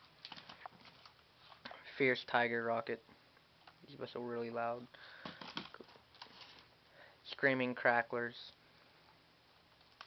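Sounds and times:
packages being handled: 0.0s - 1.7s, 5.1s - 6.8s.

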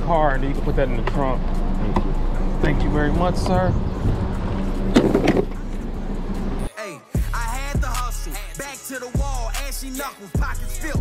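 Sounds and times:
outdoor background noise: 0.0s - 6.7s
car engine humming: 0.0s - 11.0s.

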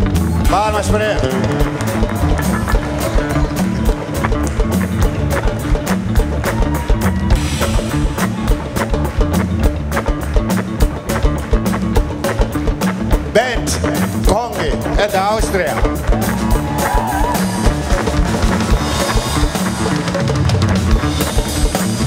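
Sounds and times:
drum kit hits: 0.0s - 22.0s
walking bass line: 0.0s - 22.0s.

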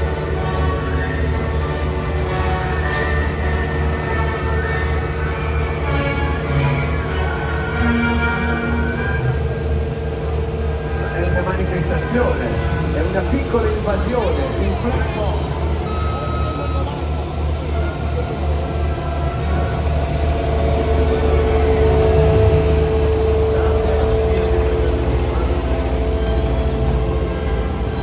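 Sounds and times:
diesel engines rumbling: 0.0s - 28.0s.

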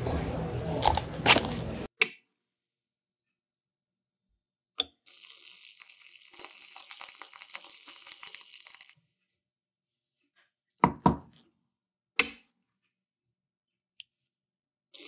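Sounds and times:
cream dispenser spraying: 0.8s - 1.6s.

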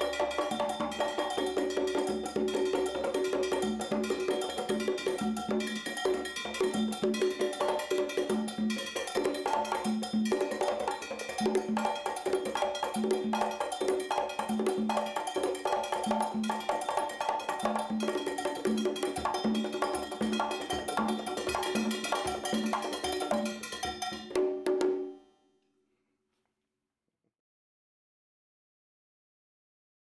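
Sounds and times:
congas played by hand: 0.0s - 25.2s.

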